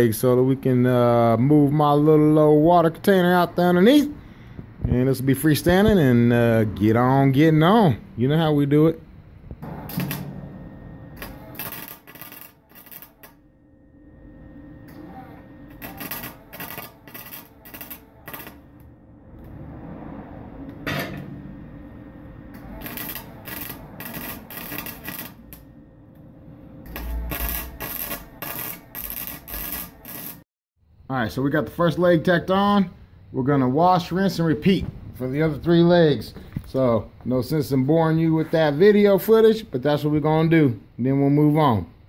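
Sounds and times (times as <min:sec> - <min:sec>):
welding arc sizzling and crackling: 0:09.5 - 0:13.4, 0:14.9 - 0:18.9, 0:22.5 - 0:25.8, 0:26.8 - 0:30.5.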